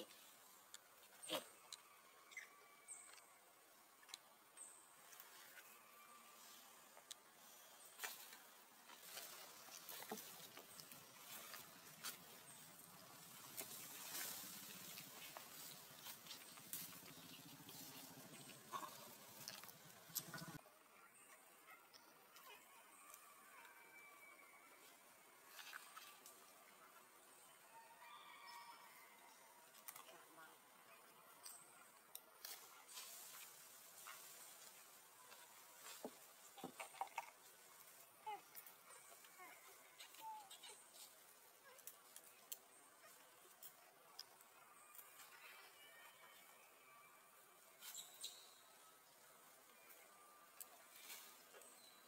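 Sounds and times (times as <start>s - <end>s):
soft rustles and ticks: 0.0s - 2.4s, 6.4s - 20.6s, 24.8s - 26.9s, 29.6s - 46.5s.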